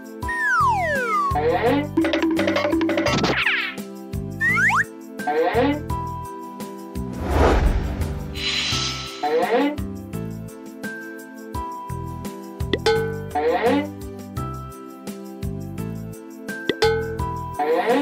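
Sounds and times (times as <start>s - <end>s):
cheerful cartoon music: 0.0s - 7.7s, 8.4s - 14.2s, 15.2s - 18.0s
whoosh effect: 7.0s - 9.5s.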